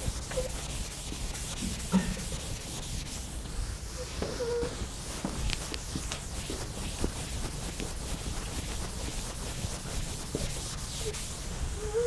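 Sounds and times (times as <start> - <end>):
chalk scraping on blackboard: 0.0 - 3.4, 4.0 - 12.0.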